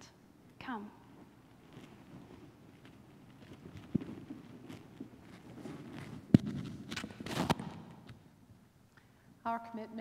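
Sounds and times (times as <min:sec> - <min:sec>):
rustling handling noise: 0:01.1 - 0:08.2.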